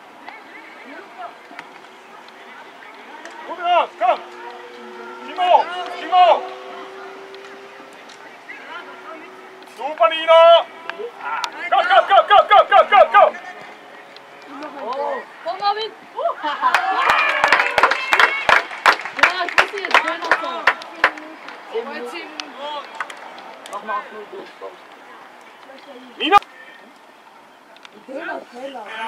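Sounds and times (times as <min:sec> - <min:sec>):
distant players shouting: 0:00.0 - 0:29.0.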